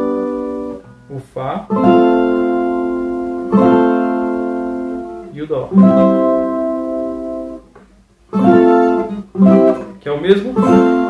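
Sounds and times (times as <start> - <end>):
strummed viola chord ringing: 0.0 - 7.7, 8.3 - 11.0.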